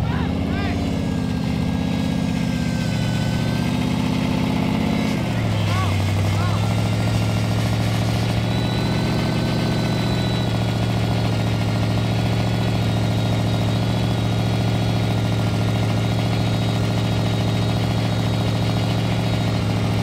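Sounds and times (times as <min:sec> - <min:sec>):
engine idling: 0:00.0 - 0:20.0.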